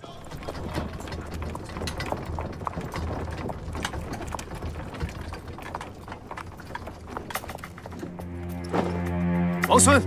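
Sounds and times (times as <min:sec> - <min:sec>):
horse hooves on stone paving: 0:00.0 - 0:09.9.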